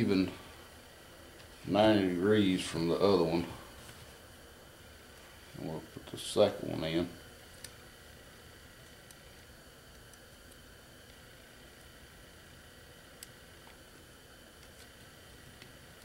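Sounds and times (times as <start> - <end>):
room hiss: 0.0 - 16.0.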